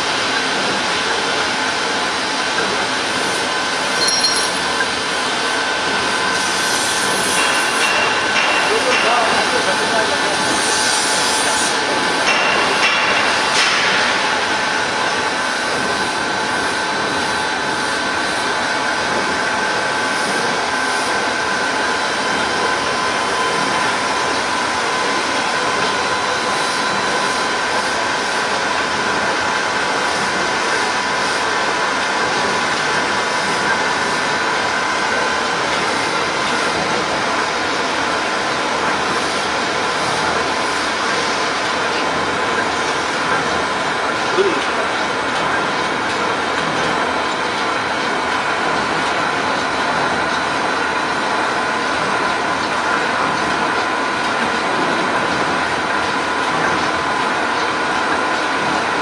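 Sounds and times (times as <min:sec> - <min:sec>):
rollers and conveyors running: 0:00.0 - 0:59.0.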